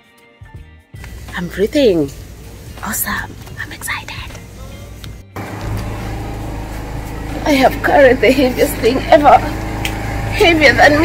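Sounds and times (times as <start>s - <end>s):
low mechanical hum: 4.3s - 11.0s.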